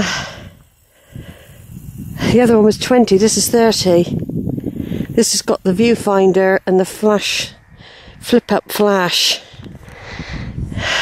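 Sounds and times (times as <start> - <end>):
person breathing: 0.0 - 2.3, 4.6 - 5.2, 7.7 - 8.2, 9.3 - 11.0.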